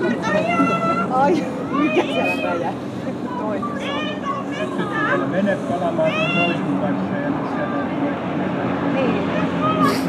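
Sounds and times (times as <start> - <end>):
boat engine running at speed: 0.0 - 10.0.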